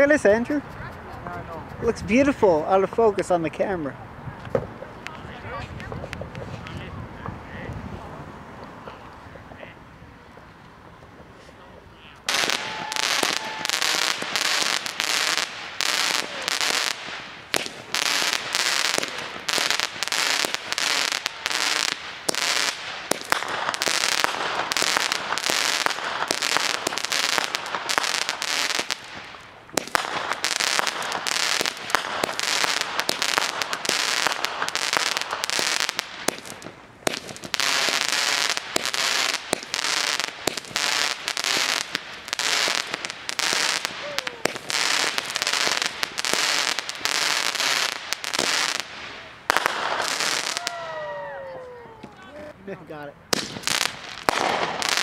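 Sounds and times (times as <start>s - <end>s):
fireworks crackling and popping: 0.0s - 55.0s.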